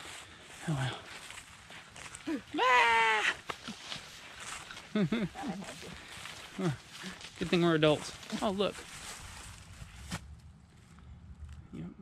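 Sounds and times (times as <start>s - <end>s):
footsteps in dry leaves: 0.0s - 10.9s
wind rumble on microphone: 8.9s - 12.0s.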